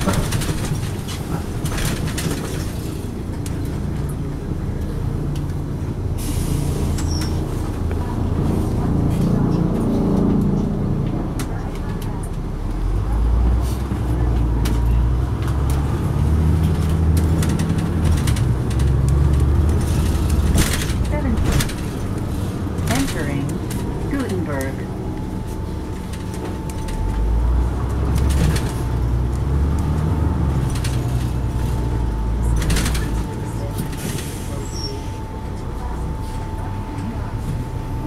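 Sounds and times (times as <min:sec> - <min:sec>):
bus diesel engine under load: 0:00.0 - 0:38.0.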